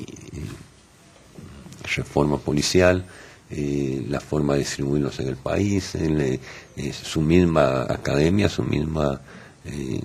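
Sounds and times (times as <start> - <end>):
faint breath: 3.0 - 3.5, 6.4 - 6.8, 9.2 - 9.7.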